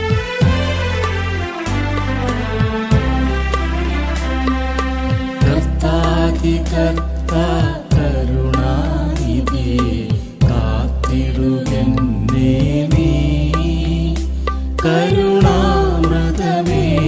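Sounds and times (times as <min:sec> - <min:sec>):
regular beat: 0:00.0 - 0:17.0
person singing: 0:05.4 - 0:17.0.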